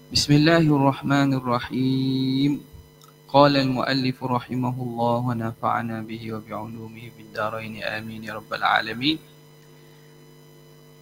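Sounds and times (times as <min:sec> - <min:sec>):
faint electrical hum: 0:00.0 - 0:11.0
person's voice: 0:00.1 - 0:02.6, 0:03.3 - 0:09.2.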